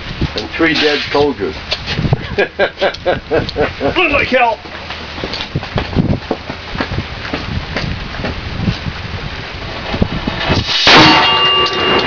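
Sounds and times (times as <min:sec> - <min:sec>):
cannon blast: 0:10.6 - 0:12.0
steady ringing tone: 0:10.8 - 0:12.0.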